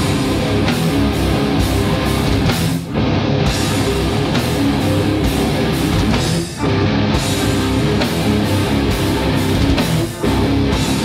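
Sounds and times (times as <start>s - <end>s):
thrash metal band playing live: 0.0s - 11.0s.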